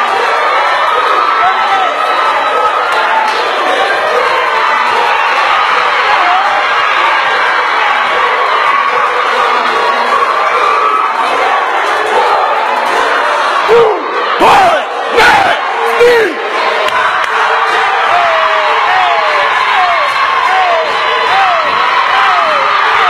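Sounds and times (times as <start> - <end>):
crowd cheering and shouting: 0.0 - 23.0
loud yells and whoops: 0.0 - 23.0.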